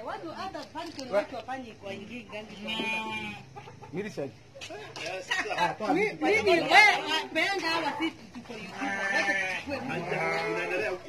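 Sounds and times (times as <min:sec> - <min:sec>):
chickens clucking: 0:02.2 - 0:05.0.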